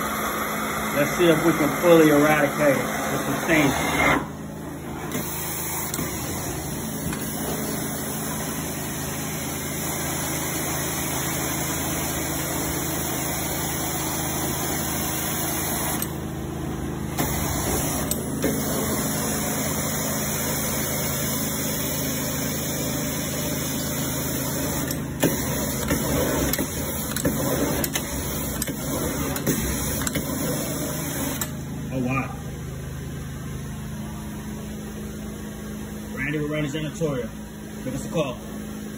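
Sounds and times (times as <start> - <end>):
carpet extractor running: 0.0 - 38.9.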